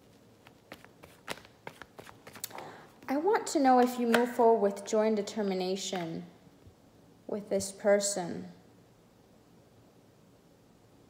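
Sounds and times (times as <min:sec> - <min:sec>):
cards being shuffled: 0:00.0 - 0:03.2.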